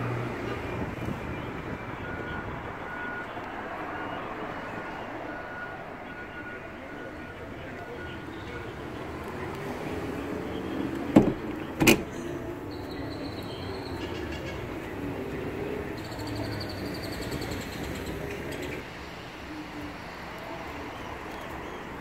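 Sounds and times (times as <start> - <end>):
car cabin background noise: 5.5 - 18.9.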